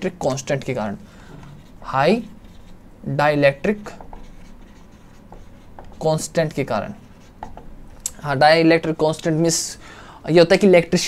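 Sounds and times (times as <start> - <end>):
marker writing on whiteboard: 0.2 - 8.0.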